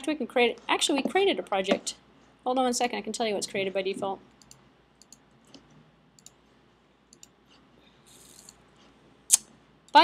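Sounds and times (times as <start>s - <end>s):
computer mouse clicks: 4.4s - 6.4s, 7.1s - 8.9s.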